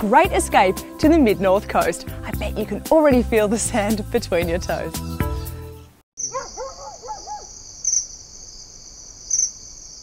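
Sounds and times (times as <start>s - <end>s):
crickets chirping: 6.2s - 10.0s.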